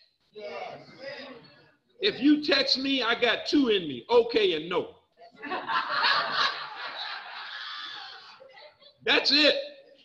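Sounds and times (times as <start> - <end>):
audience laughter: 5.4 - 8.3.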